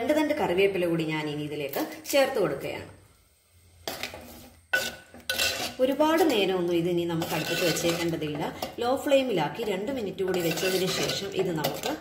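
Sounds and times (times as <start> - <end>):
spoon scraping metal pan: 3.8 - 12.0.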